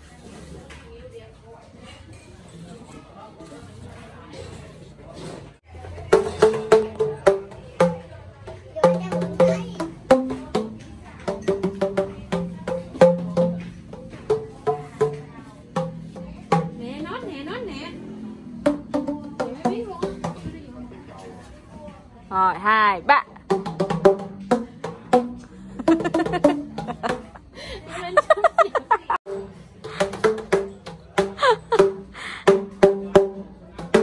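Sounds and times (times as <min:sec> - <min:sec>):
bamboo tubes struck with paddles: 0:05.9 - 0:17.1, 0:18.5 - 0:20.7, 0:23.3 - 0:27.5, 0:29.2 - 0:34.0.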